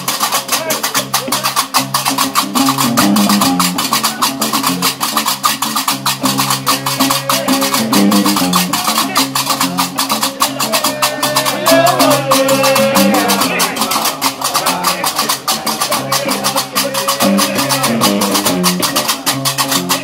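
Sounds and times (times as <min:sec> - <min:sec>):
iron castanets clattering: 0:00.0 - 0:20.0
bass lute plucking low riff: 0:01.0 - 0:20.0.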